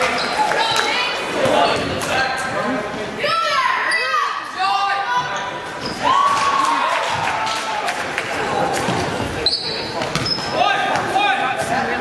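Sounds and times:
sneakers squeaking: 0.0 - 0.8, 1.4 - 2.5, 5.1 - 6.1, 8.7 - 12.0.

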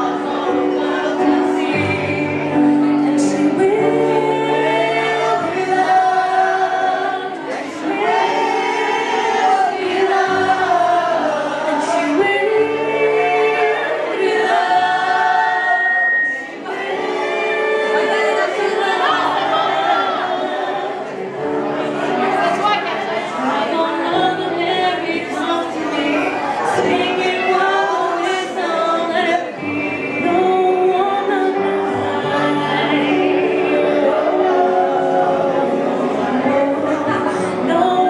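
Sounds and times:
women singing pop songs: 0.0 - 21.2, 22.1 - 38.0
woman singing pop: 22.4 - 38.0.

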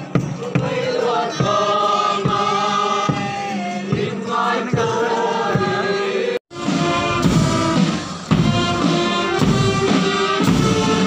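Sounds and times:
crowd singing a hymn: 0.0 - 11.0.

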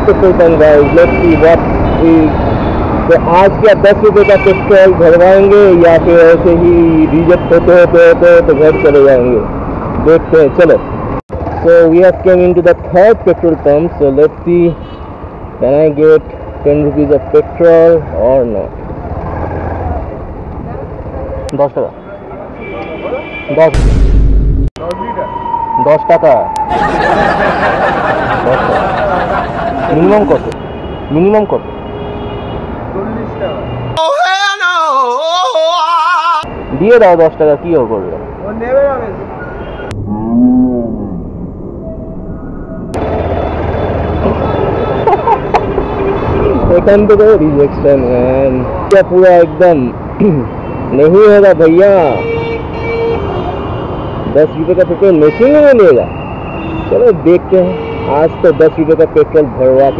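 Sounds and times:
street traffic: 0.0 - 59.9
voices: 26.0 - 31.6.

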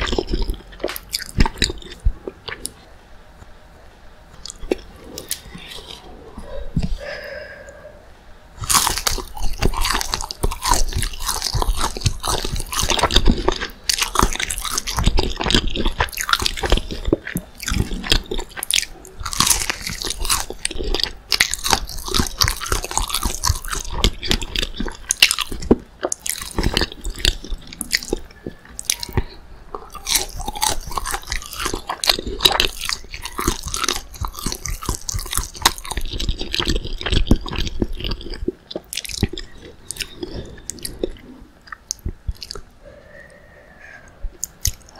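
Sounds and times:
crunchy chewing: 0.0 - 2.9, 4.4 - 7.8, 8.6 - 44.9
bite into crispy food: 8.6 - 28.2, 29.9 - 41.0.

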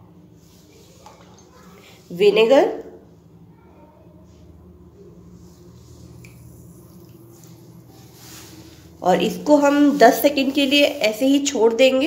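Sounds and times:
steady low hum: 0.0 - 12.0
faint rustles: 5.3 - 11.3.

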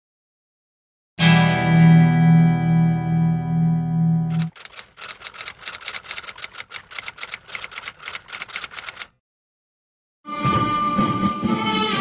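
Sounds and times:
rapid sharp clicks: 4.3 - 9.2.

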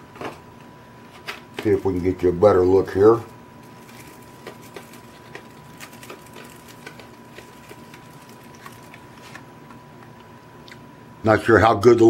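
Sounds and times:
plastic packaging crinkling: 3.6 - 9.5.

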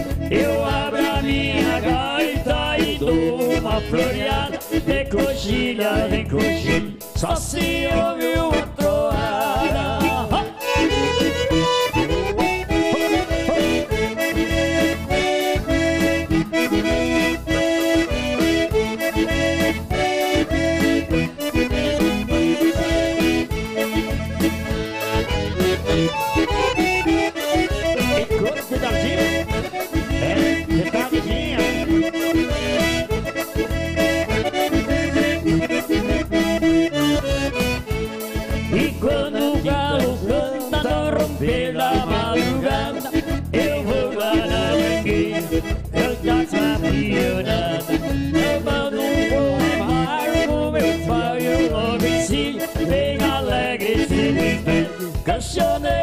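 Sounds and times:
drums keeping a beat: 0.0 - 56.0
keyboard: 0.0 - 56.0
piano accordion: 0.0 - 56.0.

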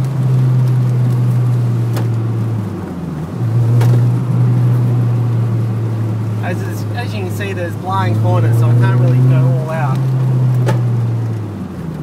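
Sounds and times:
car engine running: 0.0 - 12.0.

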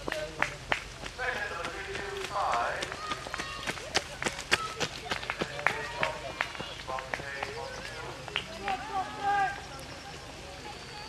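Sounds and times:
people talking quietly: 0.0 - 11.0
running footsteps on wet tarmac: 0.0 - 11.0.

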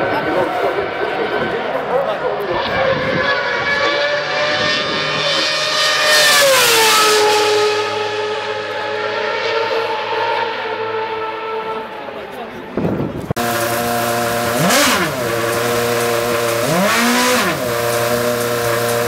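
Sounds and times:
racing car engine passing: 0.0 - 19.0.

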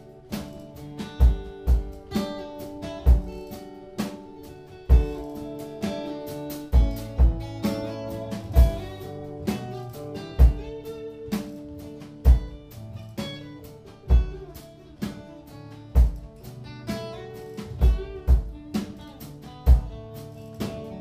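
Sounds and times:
lighter drum hits: 0.0 - 14.5
strummed acoustic guitar chords: 0.0 - 21.0
kick drum beat: 1.1 - 2.2, 3.0 - 3.6, 4.9 - 5.6, 6.7 - 9.0, 10.4 - 10.9, 12.2 - 12.8, 14.1 - 14.5, 16.0 - 16.4, 17.8 - 20.1.

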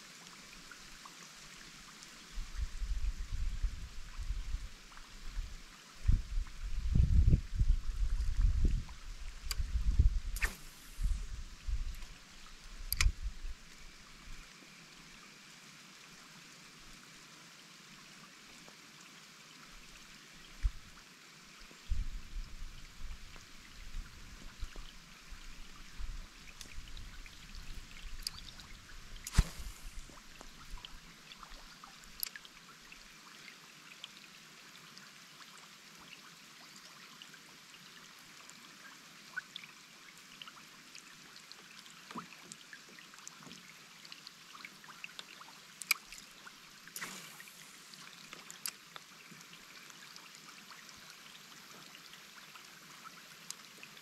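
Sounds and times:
light rain on river surface: 0.0 - 3.0, 8.8 - 54.0
sharp clicks: 12.9 - 13.2.

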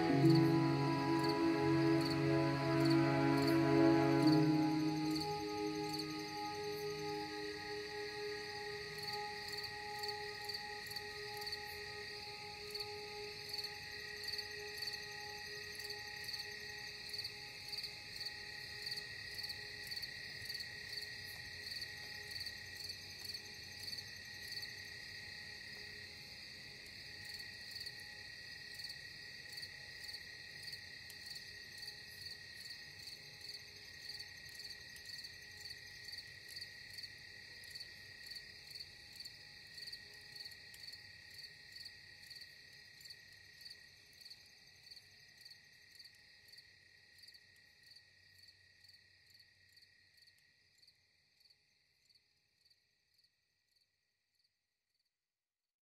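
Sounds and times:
crickets chirping: 0.0 - 53.8.

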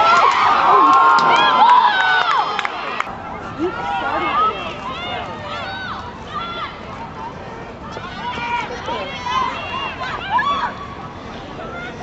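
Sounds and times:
voices shouting: 0.0 - 12.0.

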